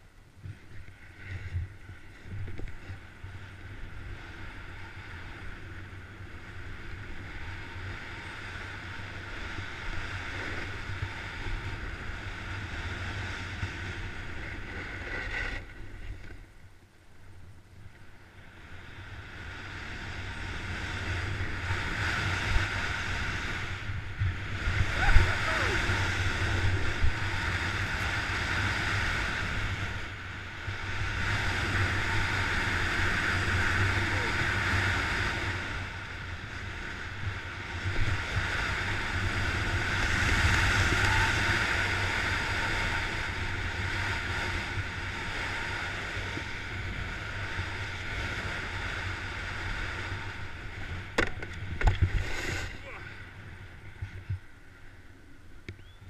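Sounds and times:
skis scraping packed snow: 0:00.4 - 0:16.5, 0:19.3 - 0:53.1
wind buffeting microphone: 0:19.5 - 0:54.6.

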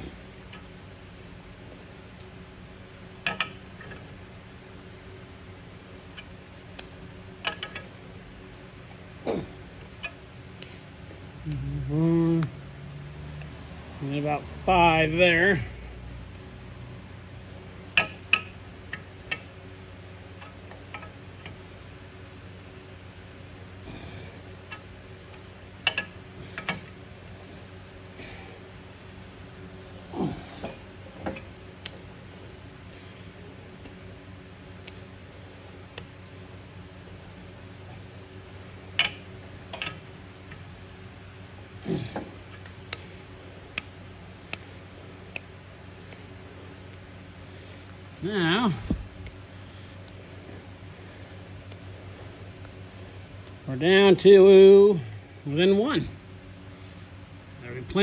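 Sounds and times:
low hum: 0:00.0 - 0:58.0.

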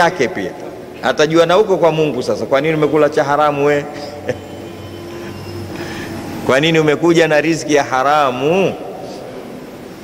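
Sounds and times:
low background hum: 0:00.0 - 0:10.0
faint steady tones: 0:00.8 - 0:07.3.

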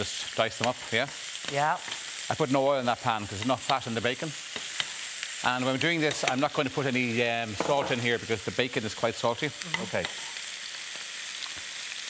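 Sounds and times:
meat sizzling in pans: 0:00.0 - 0:12.0.

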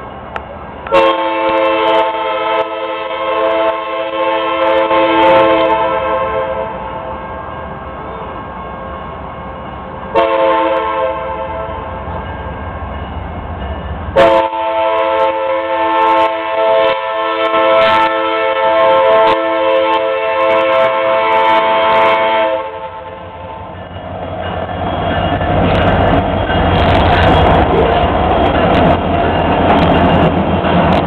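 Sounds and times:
locomotive rumble: 0:00.0 - 0:31.0
locomotive air horn blasts: 0:00.9 - 0:07.0, 0:10.1 - 0:12.0, 0:14.2 - 0:23.7.

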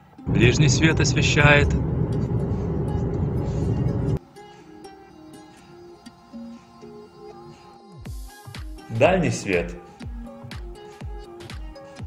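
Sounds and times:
car road and engine noise: 0:00.0 - 0:04.2.

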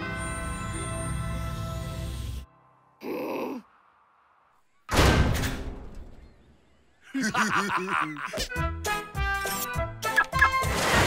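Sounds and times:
cartoon character groaning: 0:03.0 - 0:03.7
loud bang sound effect: 0:04.9 - 0:06.2.

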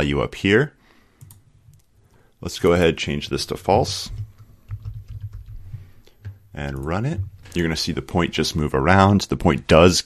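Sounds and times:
computer keyboard typing: 0:01.2 - 0:01.9, 0:02.7 - 0:07.7.

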